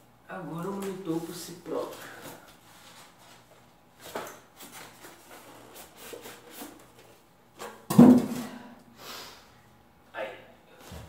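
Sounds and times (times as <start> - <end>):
loud thump: 7.9 - 8.6.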